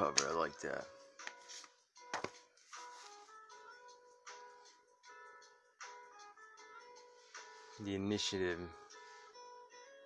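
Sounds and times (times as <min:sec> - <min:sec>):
gently plucked background music: 0:00.0 - 0:10.0.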